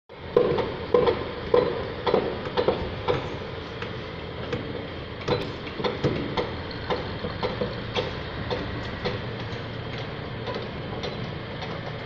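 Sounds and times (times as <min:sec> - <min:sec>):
dump truck engine running: 0:00.1 - 0:12.0
sharp knocks: 0:00.4 - 0:11.9.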